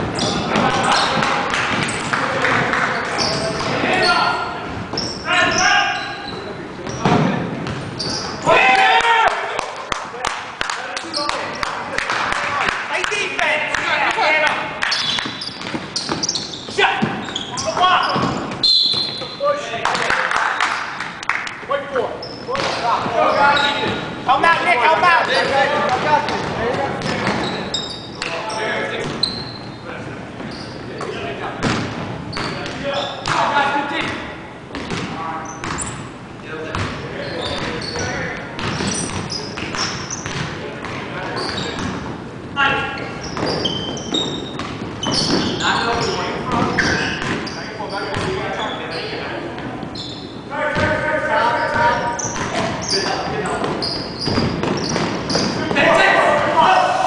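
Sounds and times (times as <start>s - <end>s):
players' voices echoing: 0.0s - 57.0s
basketball bouncing on wooden floor: 38.6s - 42.0s, 48.1s - 48.4s.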